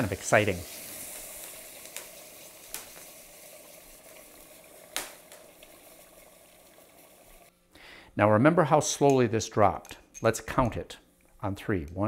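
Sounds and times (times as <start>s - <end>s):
liquid nitrogen hissing: 0.0s - 7.5s.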